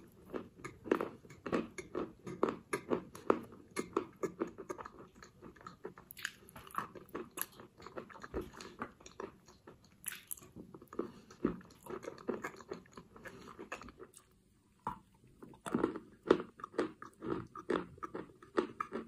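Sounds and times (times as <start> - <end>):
chalk crunching while chewed: 0.1 - 14.3, 14.9 - 19.0.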